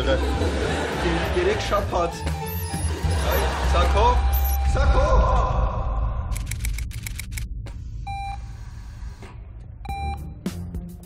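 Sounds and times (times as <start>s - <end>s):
patient monitor beeping: 2.3s - 4.8s
quick run of clicks: 6.3s - 7.5s.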